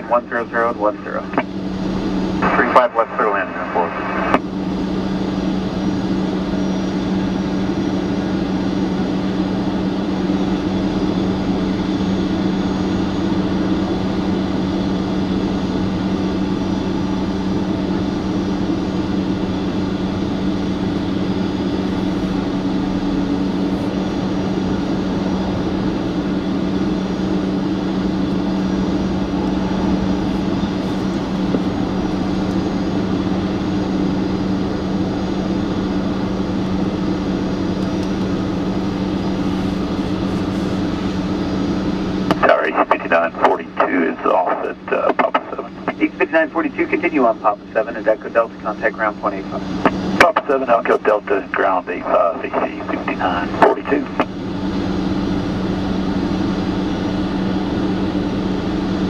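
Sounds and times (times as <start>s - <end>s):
jet aircraft drone: 0.0s - 59.0s.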